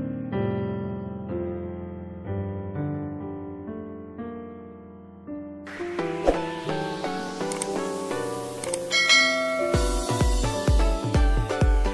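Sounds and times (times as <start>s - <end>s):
background music: 5.6s - 11.9s
light click: 7.4s - 7.8s, 8.6s - 8.9s
bell-like notification chime: 8.9s - 10.4s
electronic beat with kick drums: 9.8s - 11.9s.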